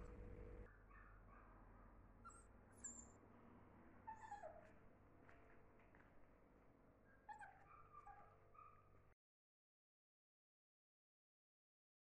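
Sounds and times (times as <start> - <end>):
puppy whining: 2.2 - 3.2, 4.1 - 4.8, 7.1 - 8.8
puppy squeaking: 2.3 - 3.2, 4.1 - 4.7, 7.2 - 8.8.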